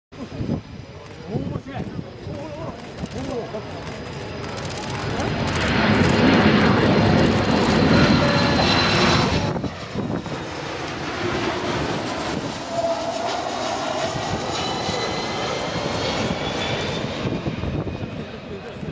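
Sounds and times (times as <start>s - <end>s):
jet engines flyby: 0.2s - 18.9s
steady high jet whine: 0.2s - 18.9s.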